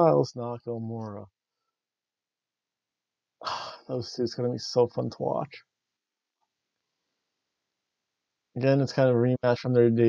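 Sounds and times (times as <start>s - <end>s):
man speaking: 0.0s - 1.2s, 3.4s - 5.6s, 8.6s - 10.0s
man sighing: 3.4s - 3.9s.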